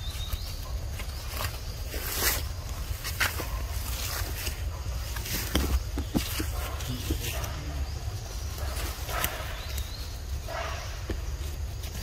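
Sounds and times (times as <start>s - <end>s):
leaves and branches rustling: 0.0s - 12.0s.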